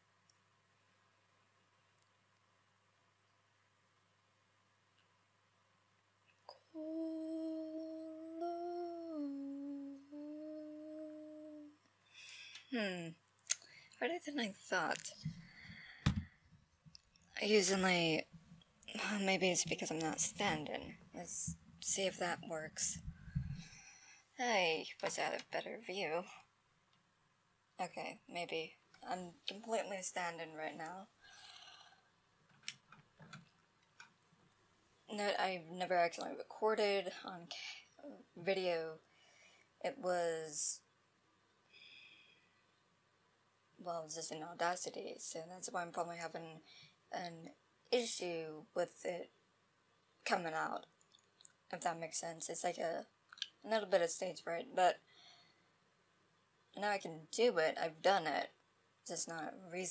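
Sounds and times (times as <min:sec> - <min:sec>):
woman humming: 0:06.5 - 0:11.9, 0:12.7 - 0:13.2.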